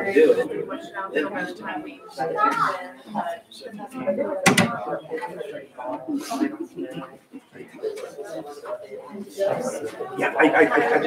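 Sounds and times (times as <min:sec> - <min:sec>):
several people talking: 0:00.0 - 0:11.0.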